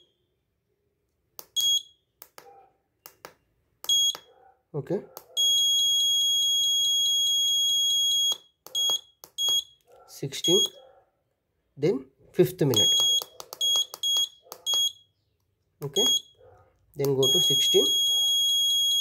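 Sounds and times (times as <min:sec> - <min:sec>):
electronic buzzer beeping: 0:12.8 - 0:15.0, 0:17.2 - 0:19.0.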